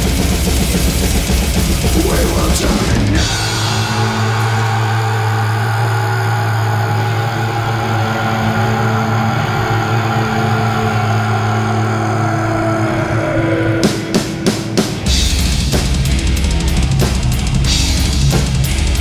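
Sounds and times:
drum strikes: 0:00.0 - 0:04.9
distorted electric guitars and bass: 0:00.0 - 0:19.0.

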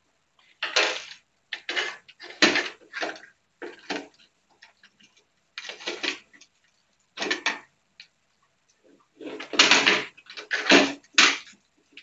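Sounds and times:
plastic clicks and clatters: 0:00.4 - 0:08.2, 0:09.2 - 0:12.0.

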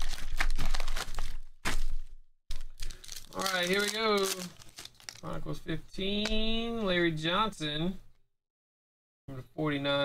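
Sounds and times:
foil packs crinkling: 0:00.0 - 0:05.4.

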